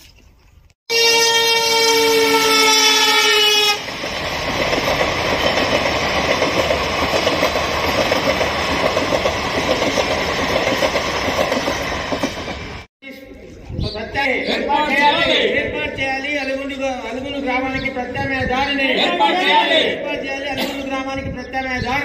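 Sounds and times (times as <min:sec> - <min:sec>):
train horn: 0:00.9 - 0:03.9
train coaches rumbling over rails: 0:01.8 - 0:12.9.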